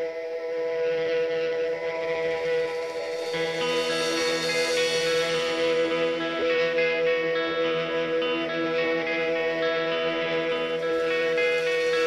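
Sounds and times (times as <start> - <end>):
sustained droning guitar chord: 0.0 - 12.0.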